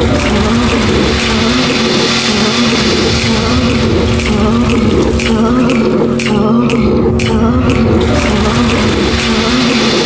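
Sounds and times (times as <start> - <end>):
broad rushing noise: 0.0 - 6.4
sustained low wavering tones: 0.0 - 10.0.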